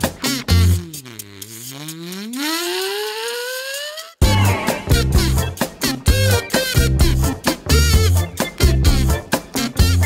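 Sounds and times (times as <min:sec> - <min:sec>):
bouncy background music: 0:00.0 - 0:10.0.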